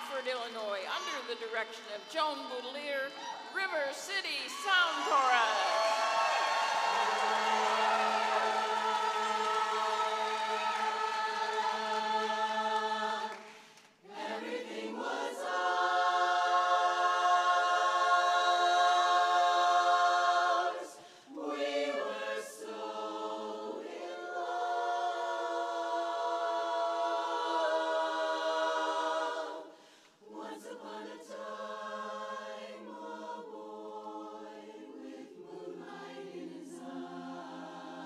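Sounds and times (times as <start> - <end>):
women's chorus singing a cappella: 0.7 - 38.0.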